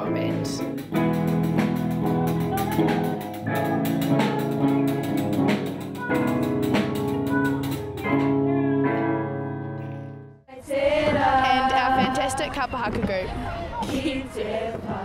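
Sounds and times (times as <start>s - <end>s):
rock band playing: 0.0s - 9.6s.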